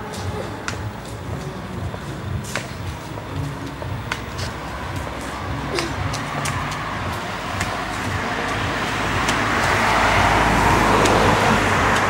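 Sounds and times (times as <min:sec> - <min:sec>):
low traffic rumble: 0:00.0 - 0:12.0
passing vehicle: 0:00.0 - 0:12.0.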